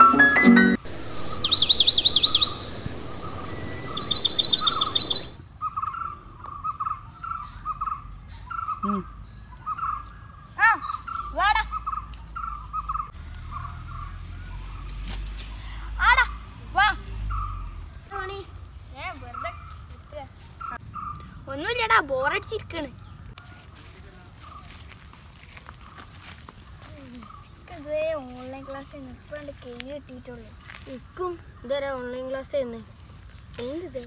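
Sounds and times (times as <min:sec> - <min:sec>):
downward-sweeping bird calls: 0:00.7 - 0:14.9
birds trilling chirps: 0:00.8 - 0:18.1, 0:19.0 - 0:21.8.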